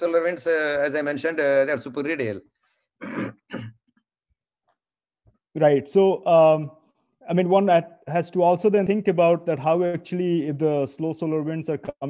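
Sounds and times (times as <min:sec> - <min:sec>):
man coughing: 0:03.0 - 0:04.0.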